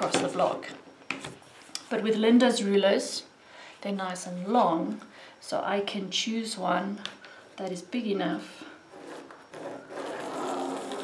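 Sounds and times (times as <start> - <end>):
ruler scraping over paper: 8.9 - 11.0.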